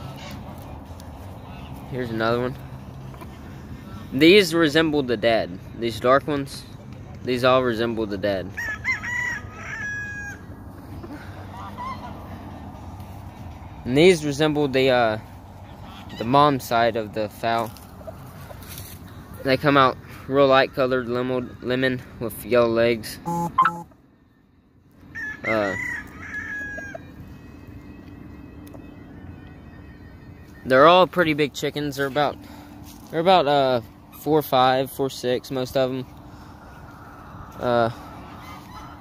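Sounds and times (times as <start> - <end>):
low outdoor rumble: 0.0 - 4.2, 7.8 - 20.3, 26.6 - 39.0
rooster crowing: 8.5 - 10.5, 25.1 - 27.1.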